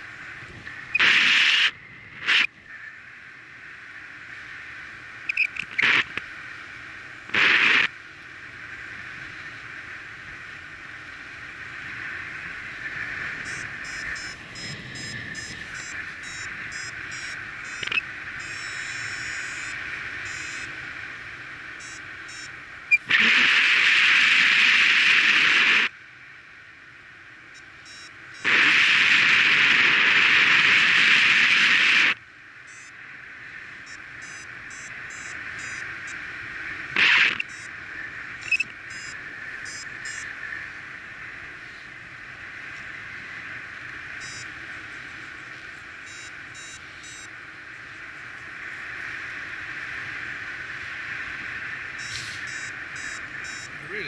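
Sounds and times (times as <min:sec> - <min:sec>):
wind rushing over microphone: 0:00.0 - 0:18.6
variometer beeping: 0:05.3 - 0:05.8, 0:13.4 - 0:20.7, 0:21.8 - 0:23.1, 0:27.6 - 0:28.6, 0:32.7 - 0:33.0, 0:33.9 - 0:36.2, 0:37.0 - 0:37.7, 0:38.4 - 0:40.3, 0:44.2 - 0:44.5, 0:46.0 - 0:47.3, 0:52.0 - 0:53.8.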